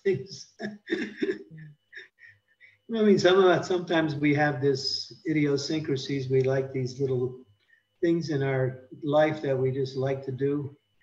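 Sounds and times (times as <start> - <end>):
man laughing: 0.1 - 2.2.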